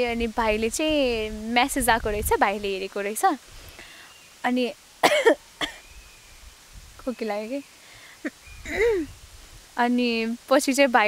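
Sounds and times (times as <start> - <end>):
woman coughing: 5.0 - 5.8, 8.7 - 9.1.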